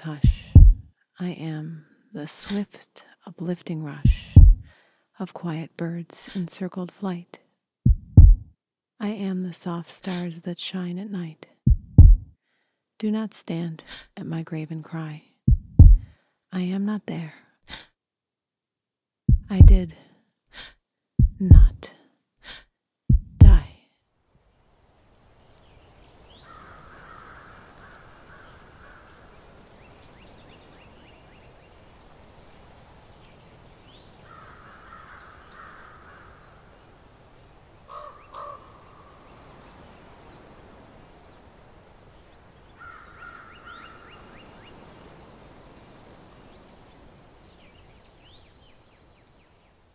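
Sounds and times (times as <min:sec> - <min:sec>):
low steady background: 0:00.0 - 0:17.9, 0:19.3 - 0:49.9
harsh repeated bird calls: 0:37.9 - 0:39.1.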